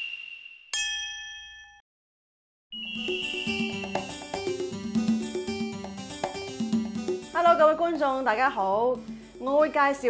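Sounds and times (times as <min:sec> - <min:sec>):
bell-like ding: 0:00.0 - 0:01.8, 0:02.8 - 0:04.9
background music: 0:02.8 - 0:10.0.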